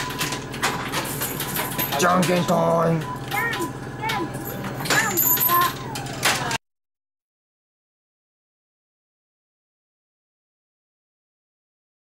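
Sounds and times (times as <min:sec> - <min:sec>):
clatter of clicks and electronic sounds: 0:00.0 - 0:06.6.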